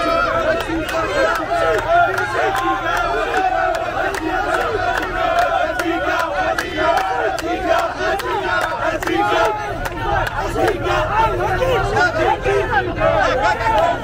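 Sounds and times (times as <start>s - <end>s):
rhythmic hand claps: 0.0s - 12.3s
crowd chanting and singing: 0.0s - 14.0s.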